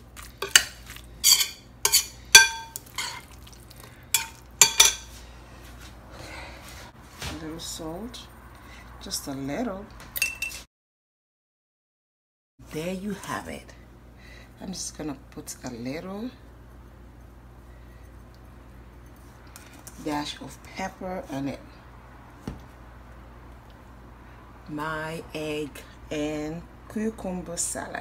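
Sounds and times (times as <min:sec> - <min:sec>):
metal spoon clinking glass bowl: 0:00.4 - 0:03.4, 0:04.2 - 0:05.1.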